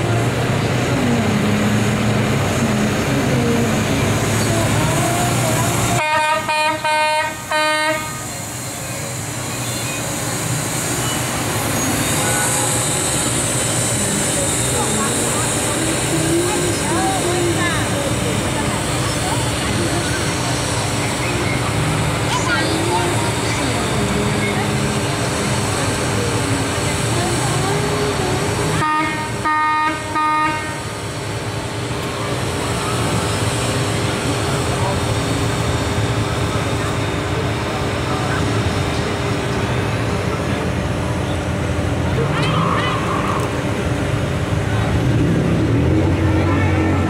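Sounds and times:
slow-moving vehicles running: 0:00.0 - 0:47.0
vehicle horn honking: 0:06.0 - 0:08.2, 0:28.8 - 0:30.8.

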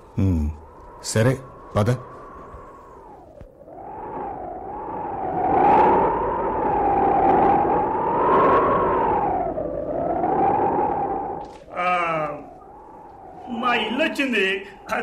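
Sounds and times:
wavering whistling tone: 0:00.0 - 0:14.5.

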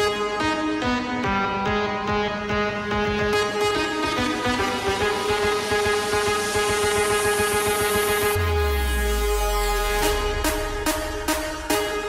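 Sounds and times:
fast pulsing low beat: 0:04.7 - 0:12.0
rising noise sweep: 0:07.0 - 0:12.0.

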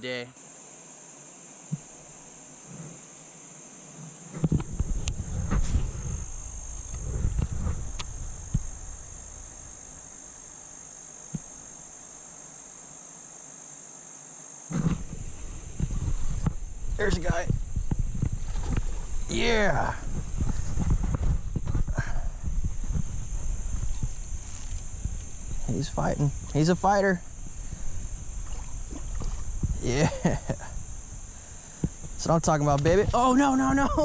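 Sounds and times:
insects buzzing: 0:00.0 - 0:34.0
rumble and knocks on microphone: 0:04.3 - 0:09.9, 0:14.7 - 0:34.0.

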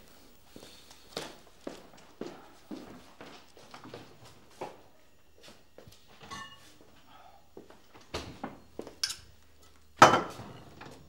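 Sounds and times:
footsteps on a hard floor: 0:00.0 - 0:07.8.

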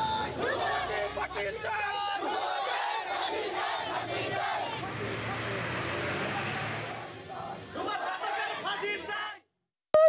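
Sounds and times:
crowd shouting slogans: 0:00.0 - 0:09.4.

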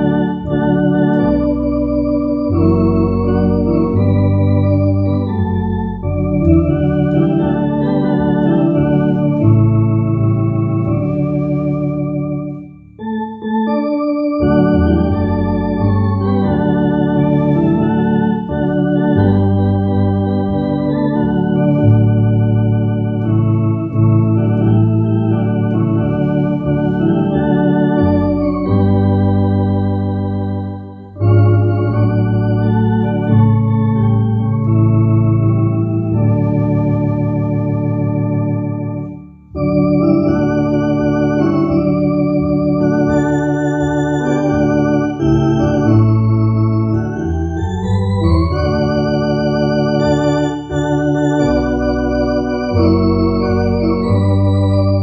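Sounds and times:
electronic organ playing a hymn: 0:00.0 - 0:55.0.

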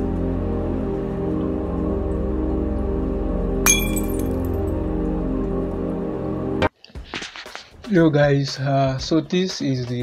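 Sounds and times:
low droning chord: 0:00.0 - 0:06.6
sharp glassy clink: 0:03.7 - 0:04.5.

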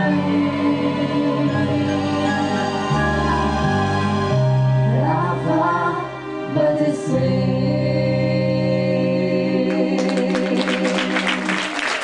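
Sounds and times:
audience applause: 0:10.0 - 0:12.0.

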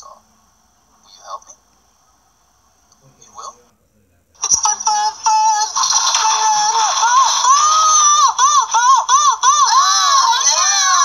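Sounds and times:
high-pitched singing from television: 0:04.4 - 0:11.0.

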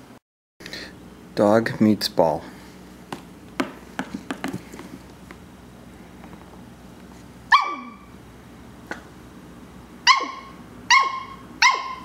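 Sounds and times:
puppy barking: 0:07.5 - 0:08.1, 0:10.0 - 0:12.0.

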